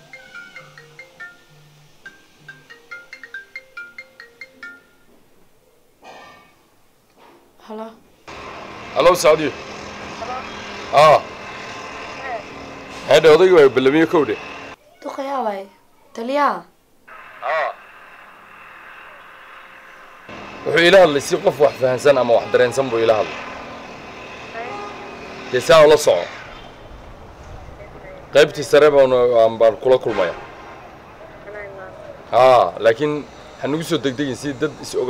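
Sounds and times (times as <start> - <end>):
telephone line hiss: 0.0 - 4.9, 17.1 - 21.6
marimba-like phone ringtone: 0.0 - 5.1.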